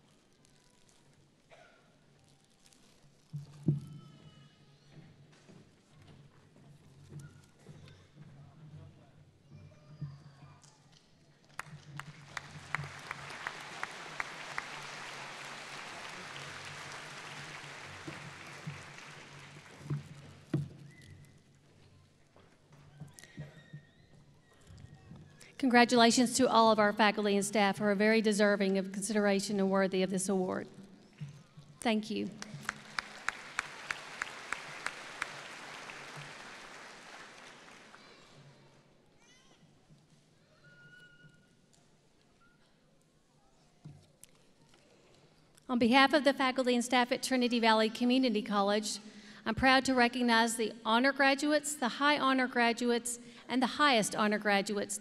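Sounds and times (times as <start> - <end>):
audience applause: 11.6 - 20.2, 32.3 - 38.4.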